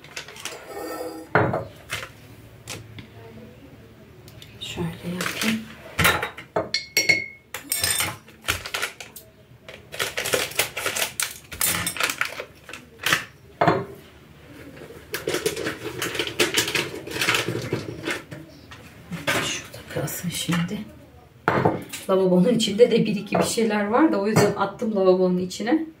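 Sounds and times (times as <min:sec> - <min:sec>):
cups and spoons clinking: 0:06.0 - 0:08.3.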